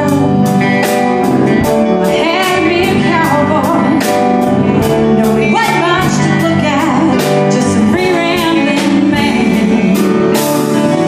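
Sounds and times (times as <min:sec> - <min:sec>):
live band playing country blues: 0:00.0 - 0:11.0.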